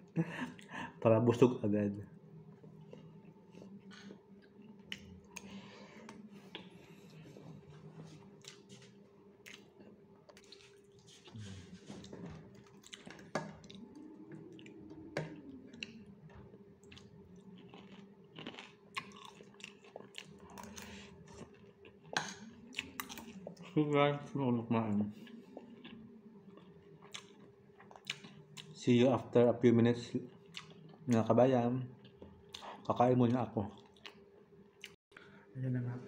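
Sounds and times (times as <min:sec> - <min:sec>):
faint chewing: 0:02.5 - 0:23.8, 0:25.1 - 0:28.8, 0:30.2 - 0:31.3, 0:33.7 - 0:35.3.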